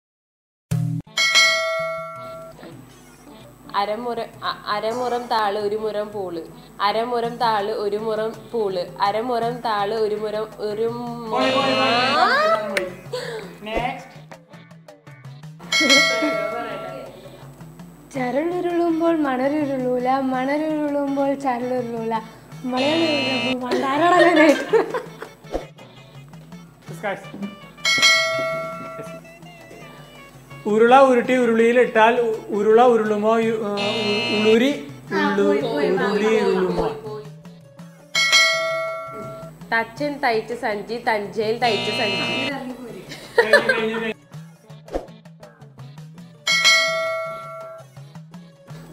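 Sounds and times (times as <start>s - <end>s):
quiet backing music with beat: 0.8s - 48.9s
bell strike ringing: 1.1s - 2.5s, 15.7s - 17.0s, 27.8s - 29.2s, 38.2s - 39.4s, 46.5s - 47.8s.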